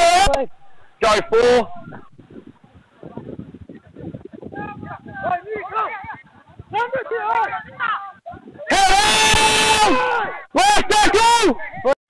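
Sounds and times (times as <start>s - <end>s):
man shouting: 0.0s - 1.8s, 6.8s - 12.0s.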